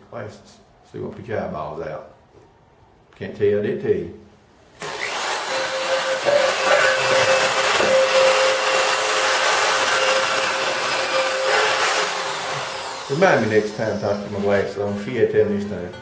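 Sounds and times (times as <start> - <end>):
electric drill running: 4.8 - 14.5.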